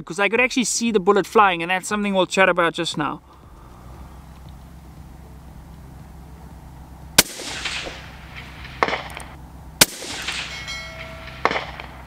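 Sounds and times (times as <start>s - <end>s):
rifle shot with echo: 7.2s - 12.0s.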